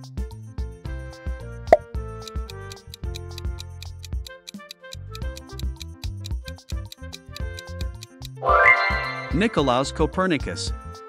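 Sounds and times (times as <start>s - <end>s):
background music with beat: 0.1s - 9.5s.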